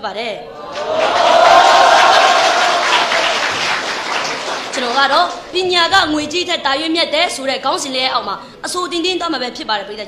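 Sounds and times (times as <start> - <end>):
audience applauding: 0.7 - 5.4.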